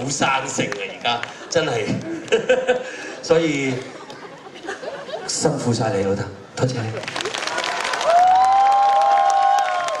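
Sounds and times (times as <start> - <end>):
audience applauding and cheering: 7.0 - 10.0.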